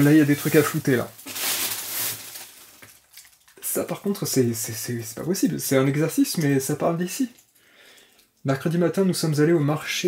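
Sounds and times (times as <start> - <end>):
paper pages rustling: 0.0 - 3.3.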